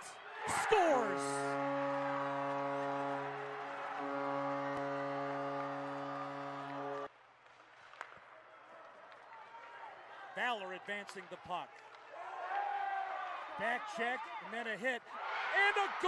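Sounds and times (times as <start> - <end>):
crowd cheering: 0.0 - 7.1, 11.8 - 14.4, 15.1 - 16.0
arena goal horn: 0.5 - 7.1.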